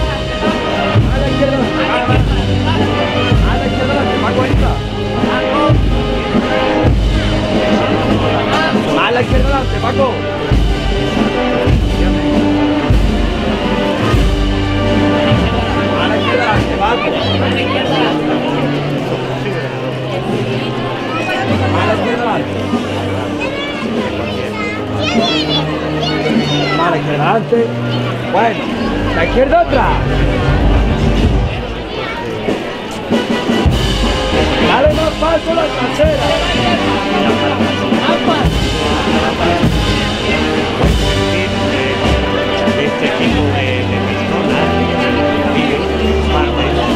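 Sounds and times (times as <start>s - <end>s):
wind band playing slow march: 0.0s - 46.9s
deep drum strokes: 28.6s - 46.9s.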